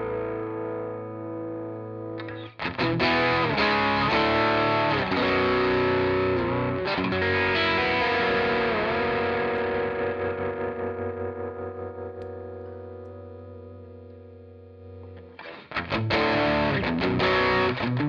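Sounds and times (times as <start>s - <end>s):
overdriven electric guitar: 0.0s - 18.0s
picked guitar notes: 0.0s - 18.0s.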